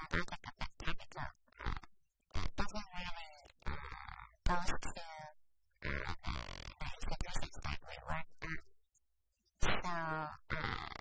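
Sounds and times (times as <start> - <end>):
woman talking: 2.6 - 3.5, 4.5 - 5.4, 6.8 - 8.3, 9.6 - 10.6.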